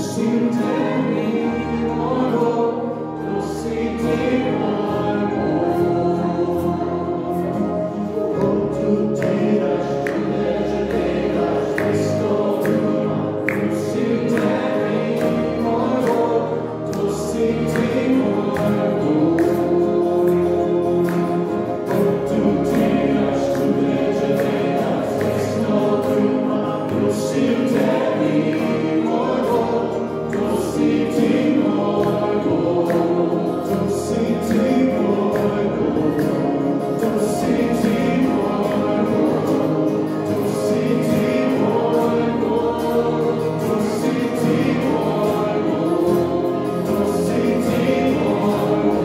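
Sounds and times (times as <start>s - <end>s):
electric keyboard: 0.0s - 49.0s
strummed acoustic guitars: 0.0s - 49.0s
voices singing together: 0.0s - 49.0s.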